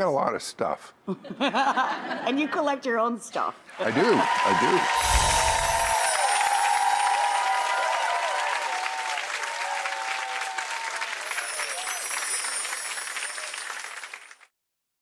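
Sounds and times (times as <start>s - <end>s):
audience applauding: 3.7s - 14.5s
voices cheering: 3.8s - 13.8s.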